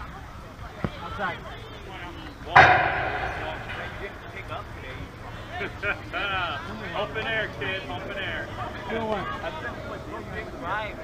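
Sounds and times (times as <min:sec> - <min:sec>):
faint voices: 0:00.0 - 0:11.0
loud metallic clang: 0:02.6 - 0:05.3.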